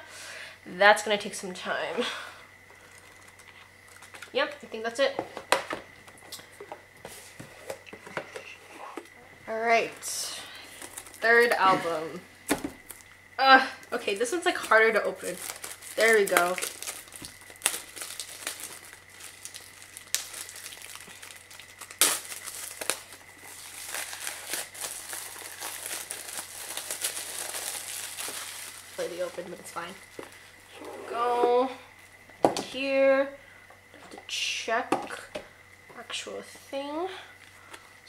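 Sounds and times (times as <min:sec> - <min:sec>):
plastic shrink wrap crinkling: 0:10.7 - 0:11.6, 0:14.1 - 0:30.7.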